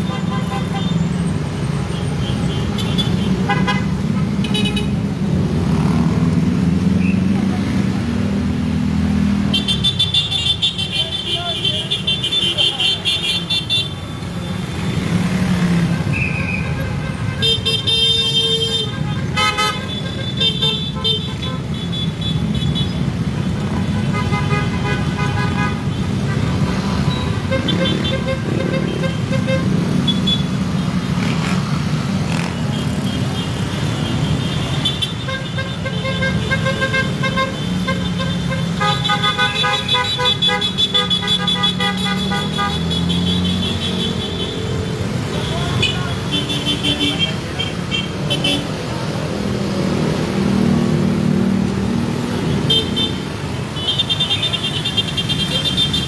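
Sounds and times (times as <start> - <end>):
vehicle engines and road rumble: 0.0 - 56.0
car horns tooting: 1.9 - 5.0, 9.5 - 14.1, 16.0 - 30.6, 32.3 - 48.9, 52.4 - 56.0.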